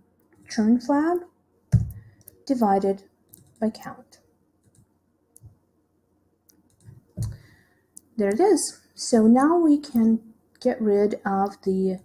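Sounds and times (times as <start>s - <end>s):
computer mouse clicks: 1.2s - 2.5s, 3.3s - 3.7s, 4.6s - 5.6s, 6.5s - 8.4s.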